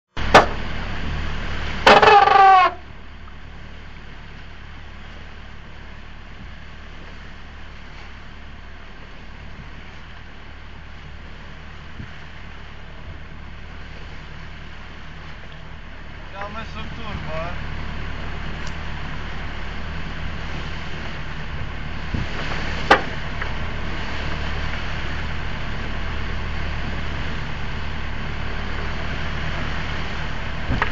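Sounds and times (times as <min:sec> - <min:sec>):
wind and sea noise: 0:00.1 - 0:30.9.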